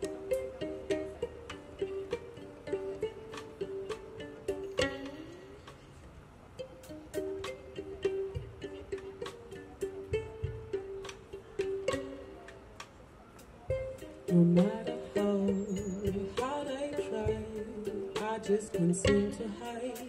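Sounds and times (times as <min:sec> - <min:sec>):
bowed violin: 0:00.0 - 0:20.0
violin plucked pizzicato: 0:00.0 - 0:20.0
light drum kit taps: 0:07.1 - 0:13.0, 0:13.6 - 0:14.8
woman singing: 0:14.3 - 0:20.0.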